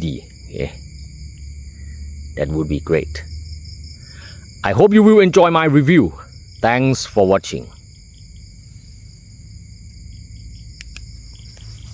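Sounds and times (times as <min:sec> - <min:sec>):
low rumble: 0:00.0 - 0:04.7
insects trilling: 0:00.0 - 0:11.9
short clicks: 0:10.8 - 0:11.1.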